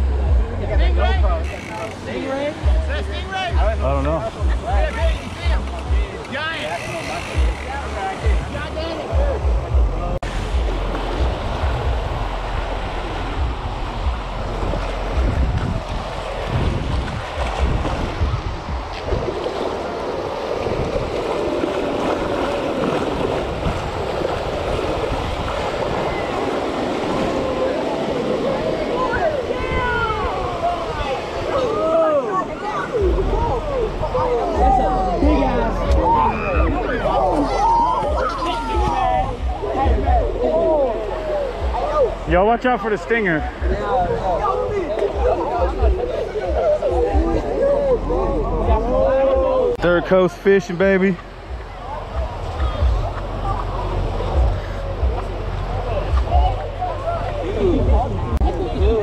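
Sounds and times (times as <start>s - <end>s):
wind buffeting microphone: 0.0s - 50.0s, 50.8s - 59.0s
indistinct voices: 0.0s - 59.0s
waves breaking: 0.0s - 59.0s.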